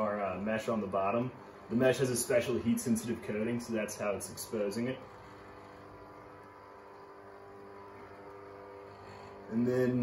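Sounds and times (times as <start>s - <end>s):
faint machine hum: 0.0s - 10.0s.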